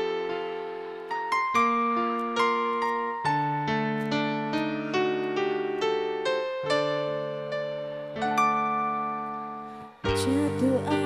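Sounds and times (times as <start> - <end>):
electric keyboard chord: 0.0 - 11.0
bass: 10.1 - 11.0.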